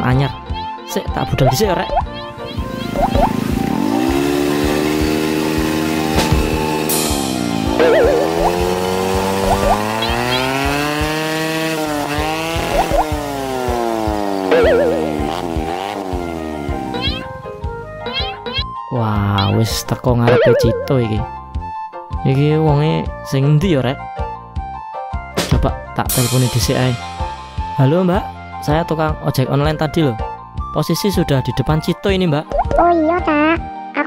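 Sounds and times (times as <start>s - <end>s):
background music: 0.0s - 34.0s
cartoon scooter engine revving: 2.0s - 18.7s, 20.3s - 21.4s.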